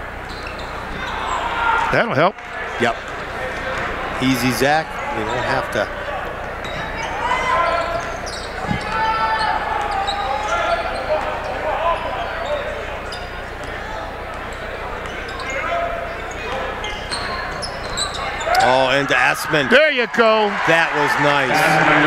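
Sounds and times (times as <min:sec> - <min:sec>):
sneakers squeaking: 0:00.0 - 0:19.1
murmur of crowd voices: 0:00.0 - 0:22.0.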